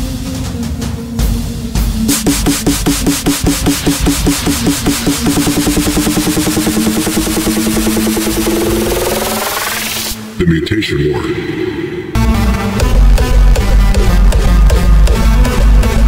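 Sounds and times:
rising sweep: 2.1 - 10.2
hard dance electronic music: 2.1 - 16.0.

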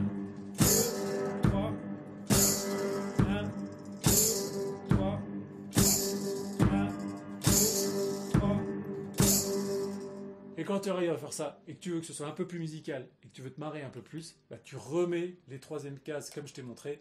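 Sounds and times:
cymbal with tambourine crashing: 0.0 - 1.5, 2.3 - 4.9, 5.7 - 8.6, 9.2 - 10.2
bass drum thumping: 0.0 - 7.7, 8.4 - 9.5
guitar chord ringing: 0.0 - 10.6.

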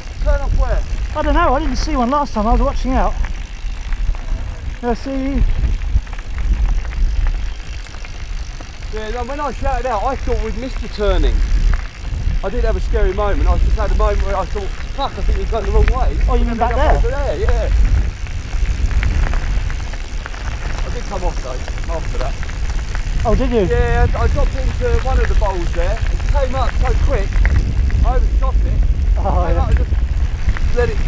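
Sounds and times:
bike clicks and rattles: 0.0 - 31.0
tyres crunching over gravel: 0.0 - 31.0
wind rumble on microphone: 0.0 - 31.0.

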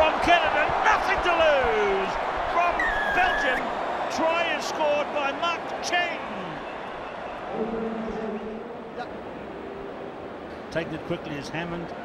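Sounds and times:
stadium crowd cheering and shouting: 0.0 - 10.5.

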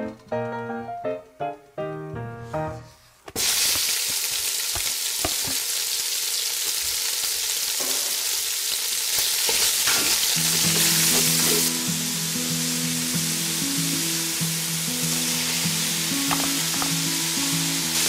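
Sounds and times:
pork sizzling in hot oil: 3.3 - 18.0.

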